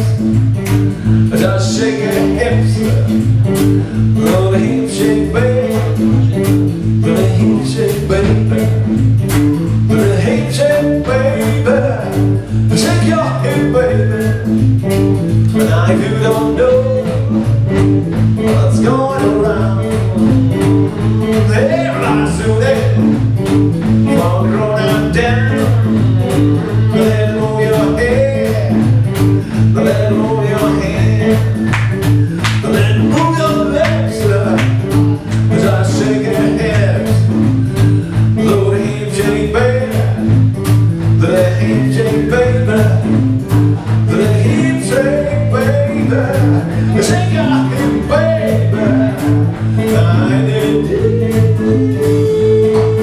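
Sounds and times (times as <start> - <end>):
drums: 0.0 - 53.0
electric blues band playing: 0.0 - 53.0
electric guitar: 0.0 - 53.0
repeating bass line: 0.0 - 53.0.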